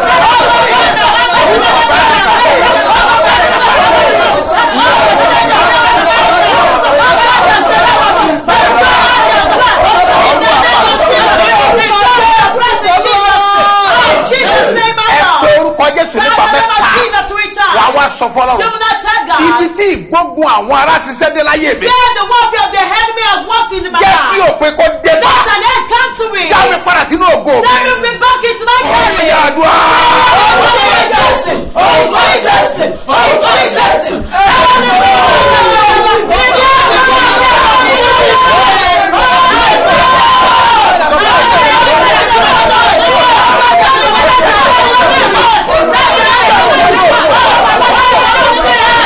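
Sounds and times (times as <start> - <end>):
woman shouting prayer: 0.0 - 20.0, 21.8 - 31.6
man shouting prayer: 0.0 - 31.6
woman speaking loudly: 11.0 - 17.8, 18.5 - 20.0, 21.8 - 24.5, 25.1 - 29.2
man speaking loudly: 11.4 - 28.3.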